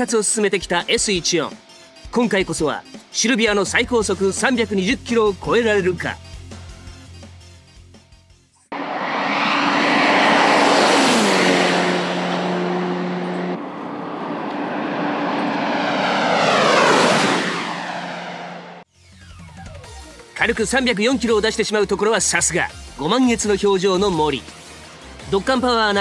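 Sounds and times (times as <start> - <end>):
car passing at high speed: 8.7 - 18.9.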